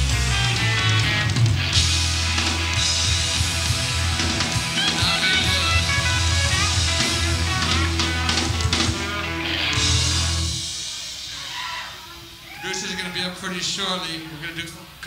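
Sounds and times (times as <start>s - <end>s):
rock band playing: 0.0s - 13.1s.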